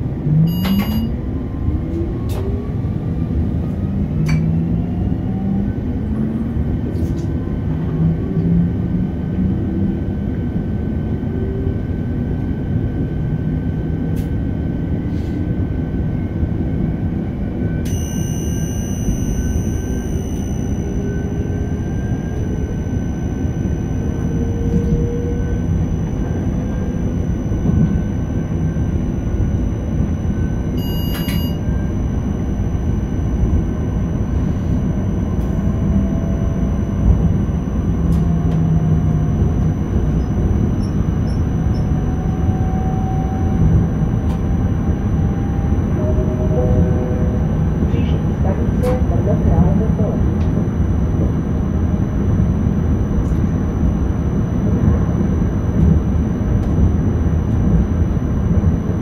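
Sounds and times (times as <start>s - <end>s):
train wheel rumble: 0.0s - 59.0s
short electronic beep: 0.5s - 1.2s, 17.8s - 35.9s
rising drive whine: 15.6s - 48.8s, 49.4s - 59.0s.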